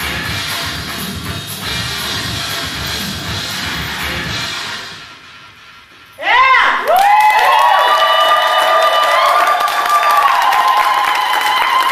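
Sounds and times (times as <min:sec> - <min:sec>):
audience applauding: 0:06.9 - 0:11.9.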